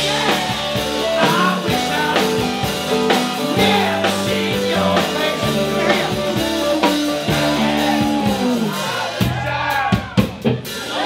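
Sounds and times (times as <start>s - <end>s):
rock band playing: 0.0s - 11.0s.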